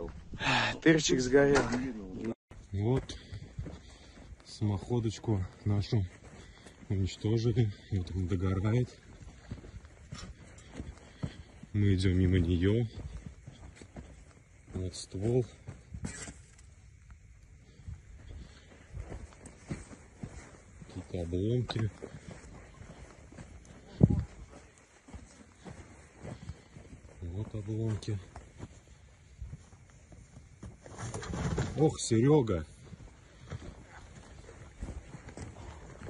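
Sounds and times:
footsteps on ground: 1.1s - 36.0s.

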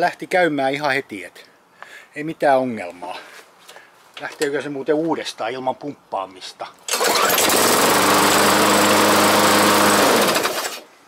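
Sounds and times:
lawn mower engine running: 6.9s - 10.9s.

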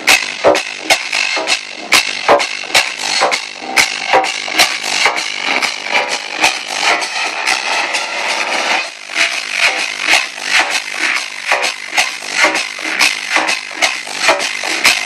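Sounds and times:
kick drum: 0.0s - 8.0s, 8.8s - 15.0s
loud trance music: 0.0s - 15.0s.

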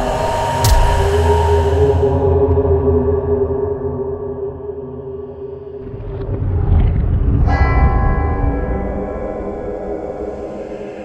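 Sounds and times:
low rumbling drone music: 0.0s - 11.0s
deep bell ringing: 7.4s - 11.0s.

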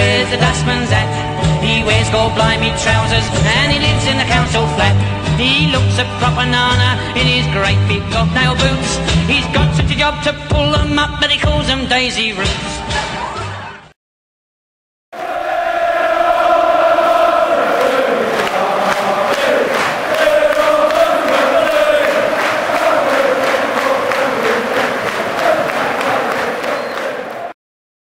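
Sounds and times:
men chanting football song: 0.3s - 5.9s, 15.2s - 27.5s.

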